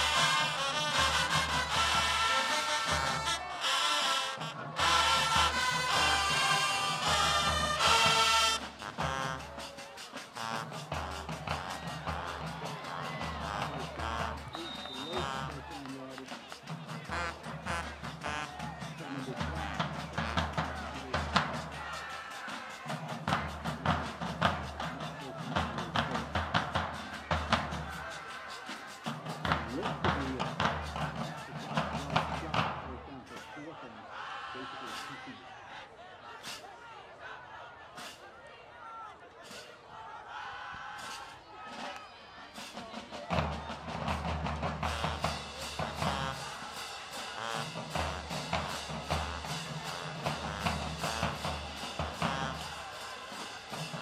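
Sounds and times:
marching band playing: 0.0s - 35.6s, 36.2s - 38.4s, 39.4s - 54.0s
crowd voices: 0.0s - 54.0s
drum hits: 4.8s - 33.5s, 43.2s - 54.0s.

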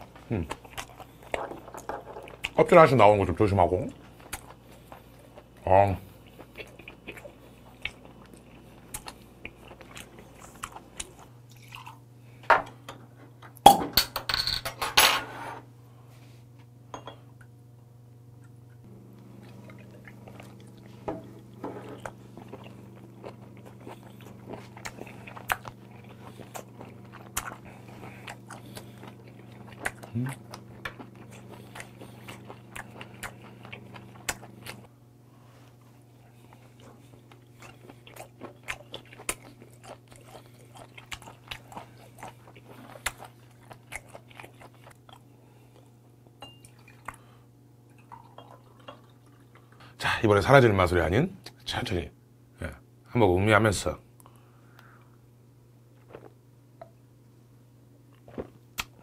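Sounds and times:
low steady hum: 0.0s - 59.0s
chewing with wet mouth clicks: 0.4s - 1.4s, 4.0s - 5.6s, 6.2s - 12.0s, 18.4s - 34.9s, 36.2s - 45.9s, 46.6s - 47.3s.

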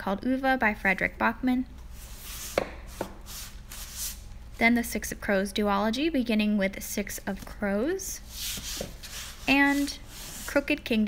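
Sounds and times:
books sliding on a bookshelf: 8.3s - 10.7s.

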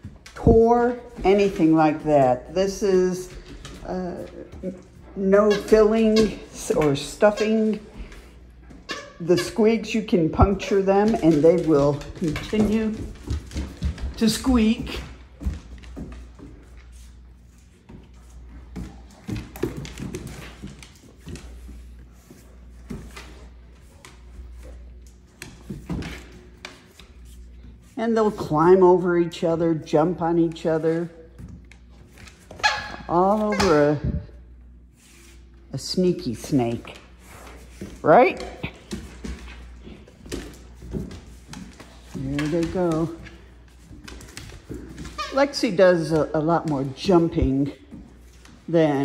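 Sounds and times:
puppy paws knocking on hardwood floor: 0.0s - 27.3s, 36.7s - 45.4s
dog claws clicking on wood floor: 10.3s - 16.9s.

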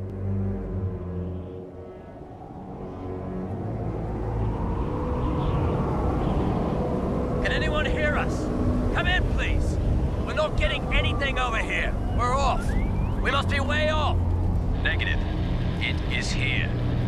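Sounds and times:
rushing engine rumble: 0.0s - 17.0s.

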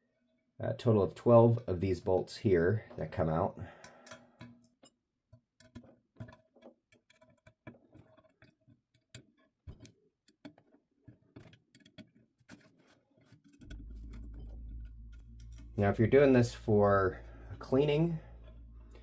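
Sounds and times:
steady low hum: 13.6s - 19.0s.

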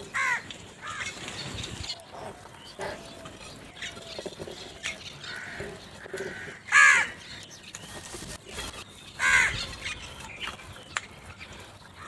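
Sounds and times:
crows cawing: 0.1s - 1.2s, 5.2s - 7.2s, 9.2s - 9.7s.

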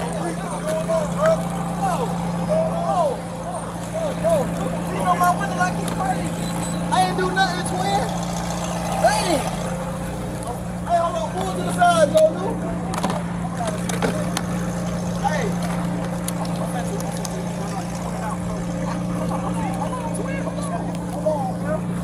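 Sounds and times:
people talking and calling out: 0.0s - 22.0s
vehicles idling: 0.0s - 22.0s.

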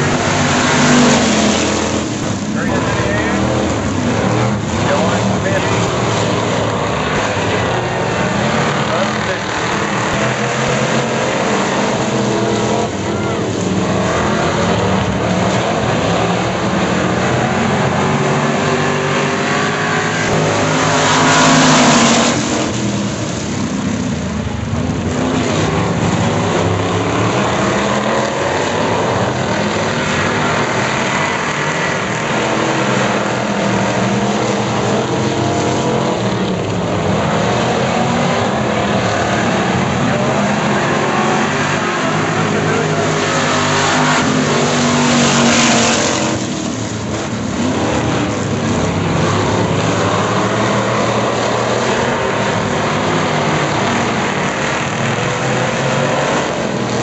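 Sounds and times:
race car engines: 0.0s - 57.0s.

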